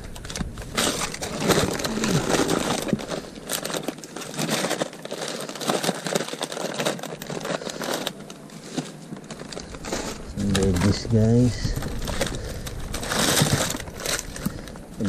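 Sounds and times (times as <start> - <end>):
plastic bags crinkling: 0.0 - 15.0.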